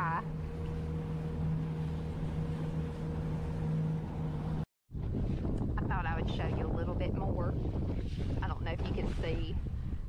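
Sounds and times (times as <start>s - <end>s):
outboard motor running: 0.0s - 10.0s
water rushing along hull: 0.0s - 10.0s
wind buffeting microphone: 4.9s - 10.0s.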